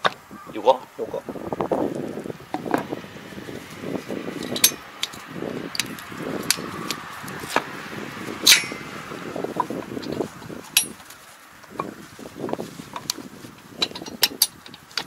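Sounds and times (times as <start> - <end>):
metallic clinks and clicks: 4.4 - 7.0, 8.4 - 8.9, 10.8 - 11.0.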